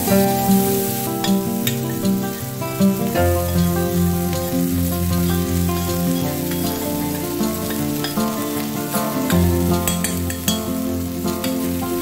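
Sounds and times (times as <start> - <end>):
background music with plucked notes: 0.0 - 12.0
vegetables sizzling in oil: 0.0 - 12.0
utensil clicking on pan: 1.2 - 2.3, 3.4 - 11.8.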